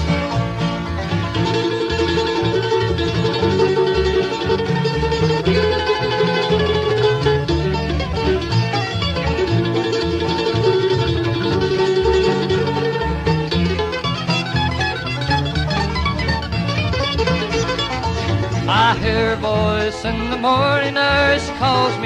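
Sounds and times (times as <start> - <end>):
bluegrass string band playing: 0.0 - 22.0.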